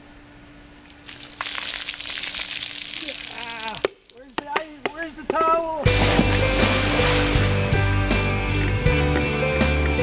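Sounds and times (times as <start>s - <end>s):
music: 5.8s - 10.0s.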